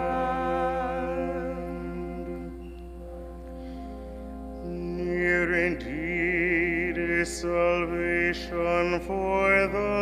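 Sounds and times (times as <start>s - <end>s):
cantor singing a hymn: 0.0s - 2.9s, 4.6s - 10.0s
church organ sustained chord: 0.0s - 10.0s.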